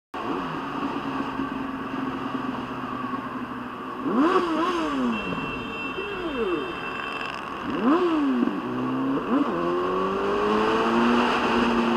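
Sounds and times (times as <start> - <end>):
motorcycle engine revving: 4.0 - 5.4, 6.2 - 11.9.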